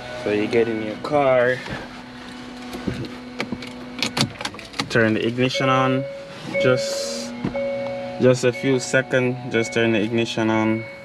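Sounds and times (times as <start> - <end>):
steady low hum: 0.0 - 11.0
car key clicking and rattling: 2.7 - 5.2.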